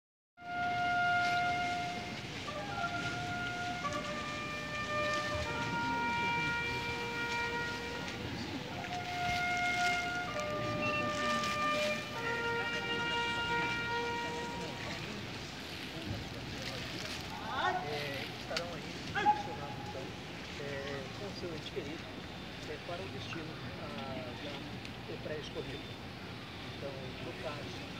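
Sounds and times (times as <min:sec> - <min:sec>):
trumpet slow melody: 0:00.4 - 0:21.1
stadium crowd murmur: 0:00.5 - 0:27.9.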